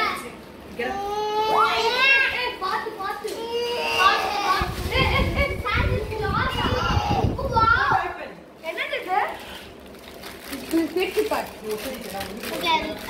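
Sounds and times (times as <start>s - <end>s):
children talking excitedly: 0.0s - 9.8s, 10.5s - 13.0s.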